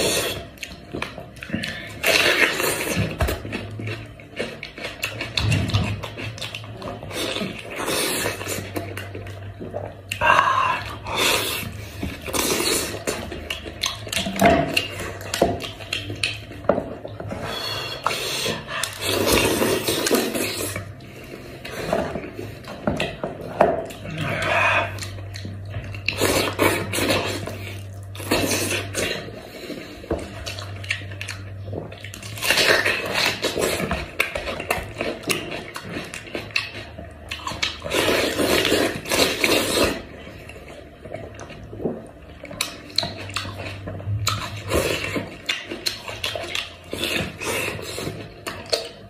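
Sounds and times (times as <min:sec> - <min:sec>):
wet chewing and smacking: 0:00.0 - 0:49.0.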